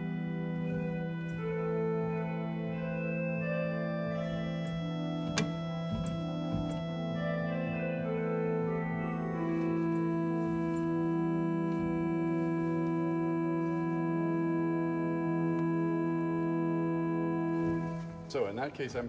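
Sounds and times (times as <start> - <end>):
pipe organ melody: 0.0 - 19.0
pipe organ pedal chord: 0.0 - 19.0.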